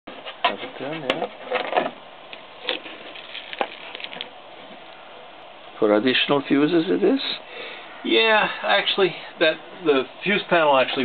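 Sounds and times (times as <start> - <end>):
low steady hiss: 0.1 - 11.0.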